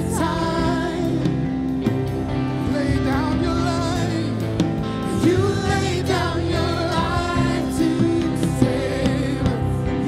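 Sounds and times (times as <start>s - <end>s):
woman singing worship song: 0.0s - 1.5s, 5.1s - 10.0s.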